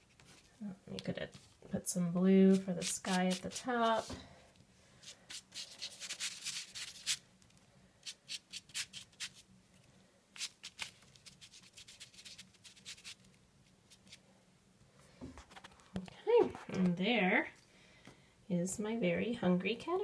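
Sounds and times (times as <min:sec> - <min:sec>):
cotton swab dabbing on paper: 0:02.5 - 0:04.2, 0:05.0 - 0:07.2.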